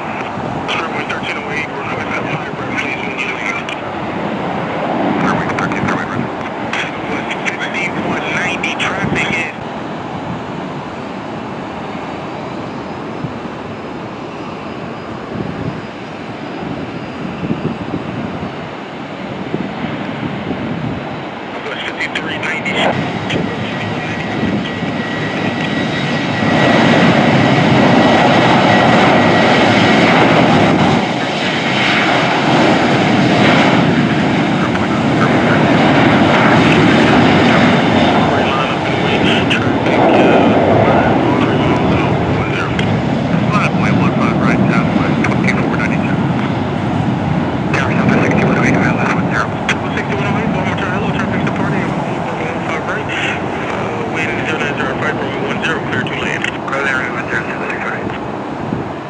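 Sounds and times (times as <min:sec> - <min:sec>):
jet engines roaring at takeoff: 0:00.0 - 0:59.0.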